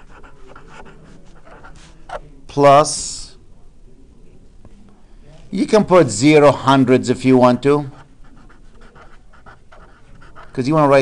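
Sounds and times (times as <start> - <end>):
marker scratching on paper: 0.0 - 2.2, 7.6 - 11.0.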